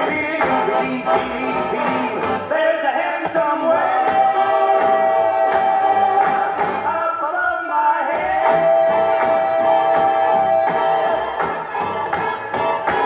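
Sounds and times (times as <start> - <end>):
backing music with steady beat: 0.0 - 7.2, 8.0 - 13.0
male voices singing gospel duet: 0.0 - 11.2.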